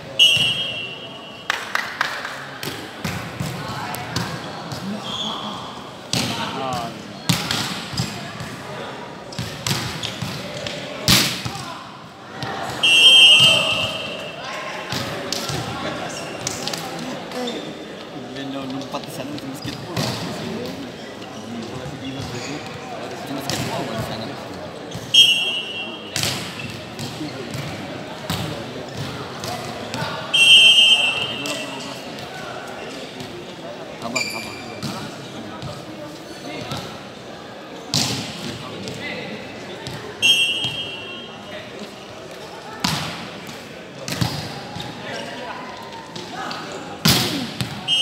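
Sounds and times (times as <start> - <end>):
chatter in sports hall: 0.0 - 48.0
voices of players and spectators: 0.0 - 48.0.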